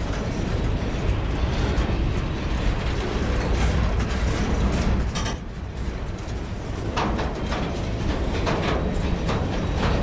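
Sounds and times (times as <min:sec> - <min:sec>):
freight train wheels rumbling on rails: 0:00.0 - 0:10.0
metallic clanks and rattles: 0:00.0 - 0:10.0.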